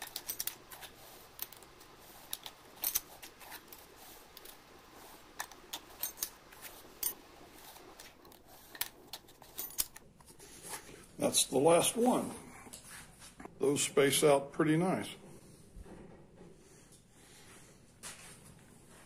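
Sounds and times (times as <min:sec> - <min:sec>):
metal fins clicking and scraping: 0:00.0 - 0:10.9.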